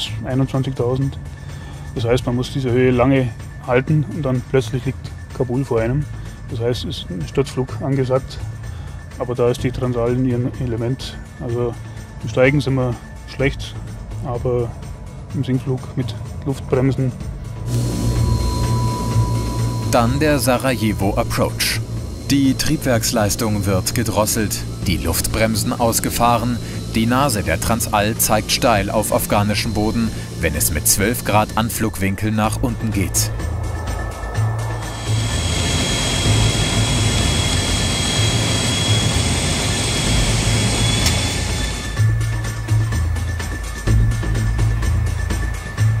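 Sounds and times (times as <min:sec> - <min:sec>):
turboprop engines droning: 0:17.2 - 0:43.5
music with low beat: 0:17.6 - 0:46.0
thin steady whine: 0:17.7 - 0:42.7.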